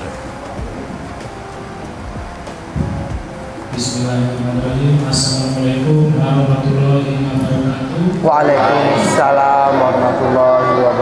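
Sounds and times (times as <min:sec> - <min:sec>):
room noise: 0:00.0 - 0:11.0
microphone handling thump: 0:02.1 - 0:03.9.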